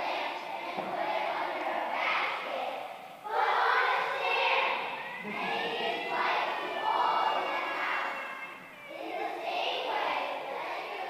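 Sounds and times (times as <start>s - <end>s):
children speaking or singing in unison: 0.0s - 11.0s.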